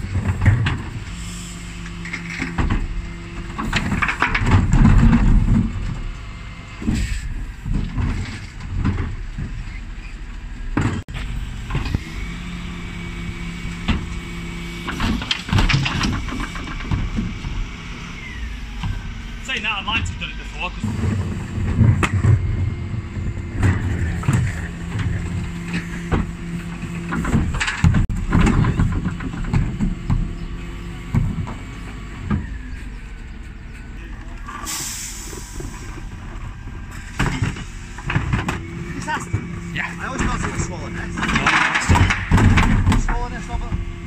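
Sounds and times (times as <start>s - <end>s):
bins clattering and banging: 0.0s - 1.2s, 1.9s - 6.2s, 6.8s - 10.0s, 10.7s - 12.0s, 13.7s - 18.1s, 20.8s - 32.9s, 34.2s - 44.0s
lorry engine and hydraulics humming: 0.0s - 44.0s
short hiss of air: 34.7s - 35.8s.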